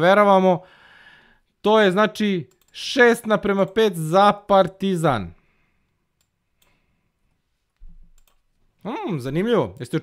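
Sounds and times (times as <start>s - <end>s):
man speaking: 0.0s - 0.6s, 1.6s - 5.4s, 8.8s - 10.0s
computer mouse clicks: 2.5s - 2.8s, 6.2s - 6.8s, 7.8s - 8.4s.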